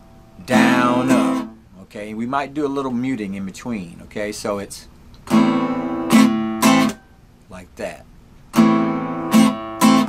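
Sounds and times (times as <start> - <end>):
acoustic guitar strumming: 0.0 - 1.7, 5.3 - 7.2, 8.5 - 10.0.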